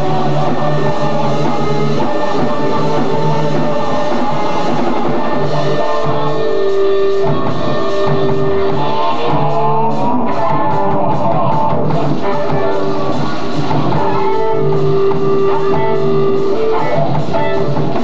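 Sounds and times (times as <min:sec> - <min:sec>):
live rock band playing: 0:00.0 - 0:18.0
sliding guitar notes: 0:00.0 - 0:18.0.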